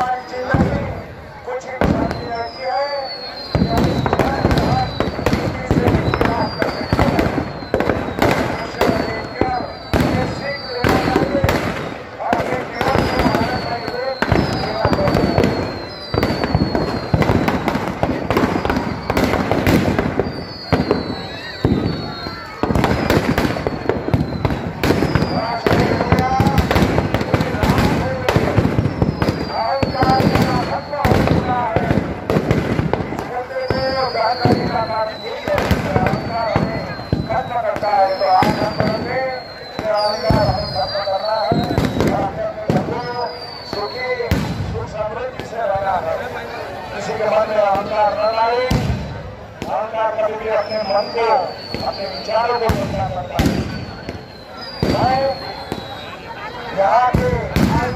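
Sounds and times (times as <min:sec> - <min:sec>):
firecrackers banging: 0:00.0 - 0:57.9
falling whistles: 0:01.8 - 0:32.3, 0:33.2 - 0:56.6.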